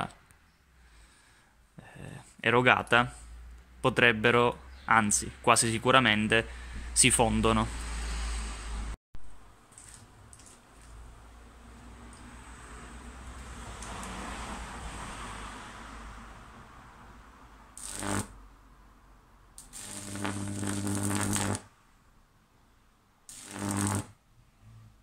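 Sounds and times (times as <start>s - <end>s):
electric arc crackling buzz: 17.7s - 18.4s, 19.6s - 21.7s, 23.3s - 24.2s.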